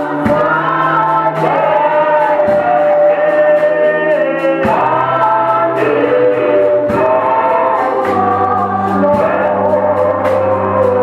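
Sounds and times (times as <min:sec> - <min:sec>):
bass notes: 0:00.0 - 0:11.0
group of voices singing: 0:00.0 - 0:11.0
man leading gospel singing: 0:00.0 - 0:11.0
steady beat: 0:00.0 - 0:11.0.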